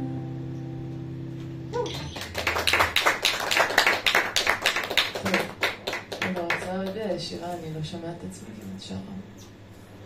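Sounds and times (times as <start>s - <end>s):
guitar chord: 0.0s - 2.4s
audience applauding: 1.9s - 7.0s.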